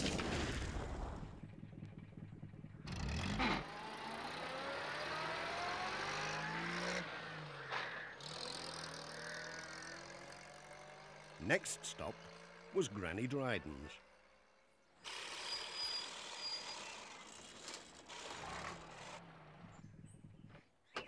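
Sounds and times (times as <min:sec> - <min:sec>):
van engine accelerating: 0:01.4 - 0:11.1.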